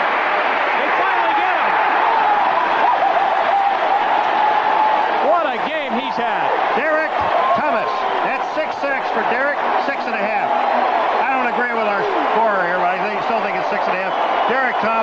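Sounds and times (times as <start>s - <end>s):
stadium crowd roaring: 0.0s - 15.0s
voices shouting: 0.0s - 15.0s.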